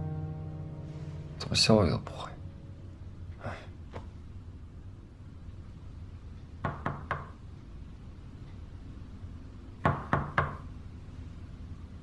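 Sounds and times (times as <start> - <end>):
knocking on a door: 6.6 - 7.4, 9.8 - 10.6.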